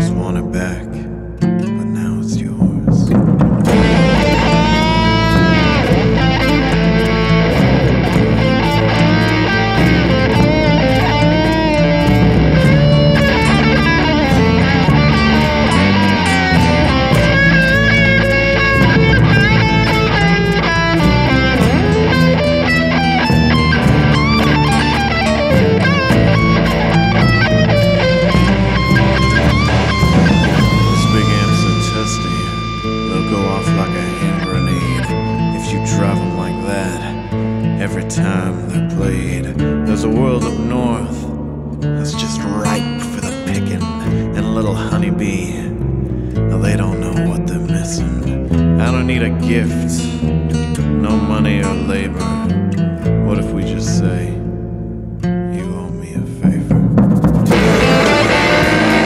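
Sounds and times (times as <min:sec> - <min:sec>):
electric guitar lead bending notes: 0:00.0 - 0:59.0
blues-rock band instrumental: 0:02.4 - 0:38.7, 0:56.6 - 0:59.0.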